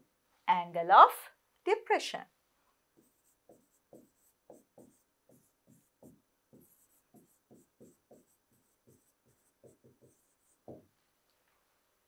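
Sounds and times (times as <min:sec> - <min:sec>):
pen scraping on whiteboard screen: 0:03.0 - 0:10.9.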